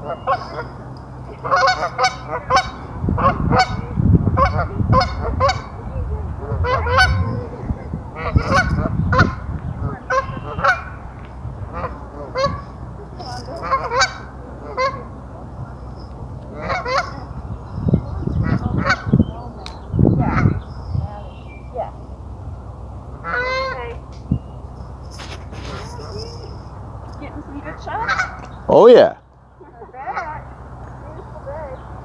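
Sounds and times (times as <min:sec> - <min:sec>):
geese honking: 0:00.0 - 0:19.6, 0:20.2 - 0:20.8, 0:23.1 - 0:26.7, 0:27.3 - 0:28.6, 0:29.9 - 0:31.9.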